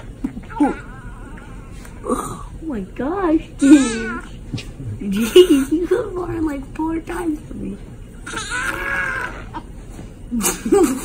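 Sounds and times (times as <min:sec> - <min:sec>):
newborn baby crying: 0:03.6 - 0:04.4, 0:08.2 - 0:09.6.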